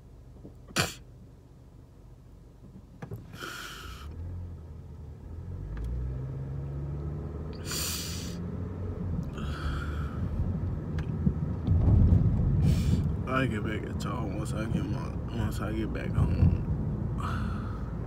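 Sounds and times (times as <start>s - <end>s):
car rumbling from inside: 2.4s - 18.0s
sharp intakes of breath: 7.6s - 8.4s, 9.3s - 10.4s, 12.6s - 13.1s.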